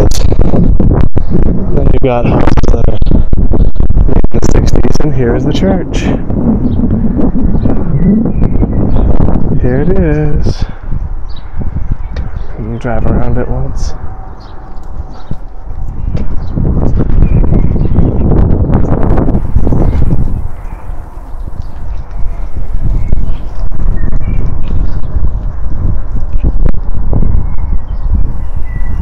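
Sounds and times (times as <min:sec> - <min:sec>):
wind buffeting microphone: 0:00.0 - 0:29.0
footsteps on paving stones: 0:14.3 - 0:17.2, 0:19.7 - 0:25.6.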